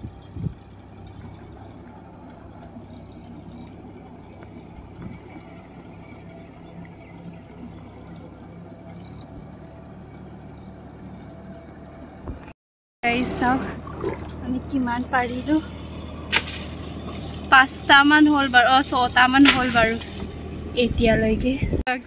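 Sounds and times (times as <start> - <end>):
tractor diesel engine droning: 0.0 - 22.0.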